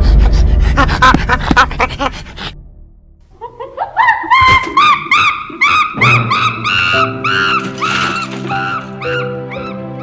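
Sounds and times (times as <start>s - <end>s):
chimpanzee hooting and screaming: 3.9s - 10.0s.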